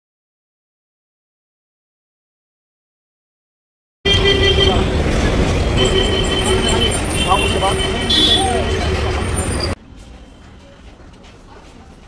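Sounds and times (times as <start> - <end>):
people's voices: 4.1 - 12.0
road traffic rumble: 4.1 - 12.0.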